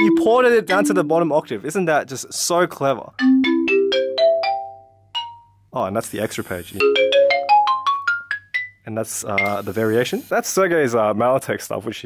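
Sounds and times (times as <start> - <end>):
rising mallet percussion notes: 0.0 - 1.7, 3.2 - 5.6, 6.8 - 8.8.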